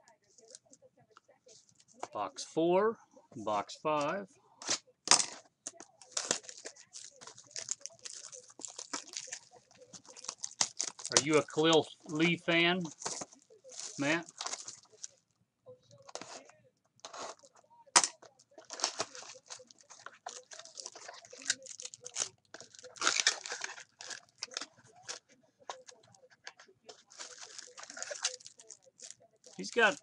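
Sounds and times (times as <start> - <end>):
shrink-wrap crinkling and tearing: 4.0 - 15.2, 16.0 - 26.2, 26.9 - 30.0.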